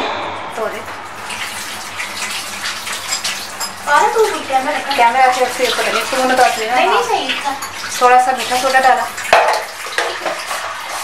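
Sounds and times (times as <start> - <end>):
running water rushing: 0.0 - 11.0.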